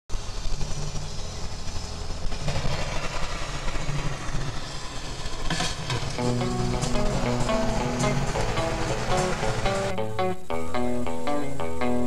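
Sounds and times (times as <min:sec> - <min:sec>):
car engine and tyre rumble: 0:00.2 - 0:09.9
hiss: 0:00.2 - 0:09.9
rushing noise burst: 0:02.8 - 0:10.0.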